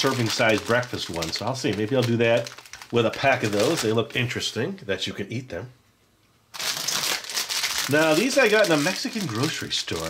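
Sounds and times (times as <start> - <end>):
plastic candy wrapper crinkling: 0.0 - 4.5, 6.5 - 10.0.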